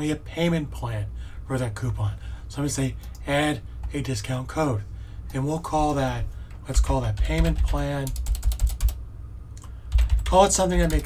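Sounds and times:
typing on computer keyboard: 0:06.8 - 0:09.0, 0:09.9 - 0:11.0.

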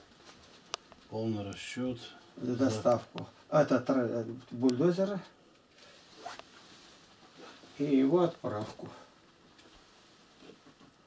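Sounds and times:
man speaking: 0:01.1 - 0:05.3, 0:07.8 - 0:09.1.

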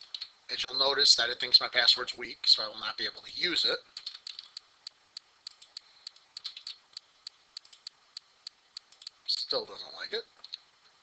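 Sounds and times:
computer keyboard typing: 0:04.0 - 0:04.6, 0:05.5 - 0:07.9.

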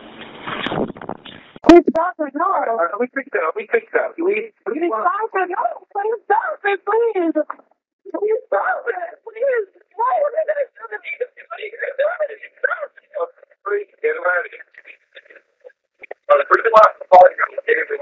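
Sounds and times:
woman pleading over phone line: 0:04.7 - 0:07.5.

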